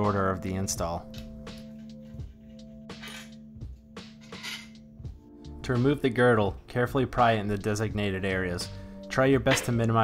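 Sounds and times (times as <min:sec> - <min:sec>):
background music held chord: 0:00.0 - 0:10.0.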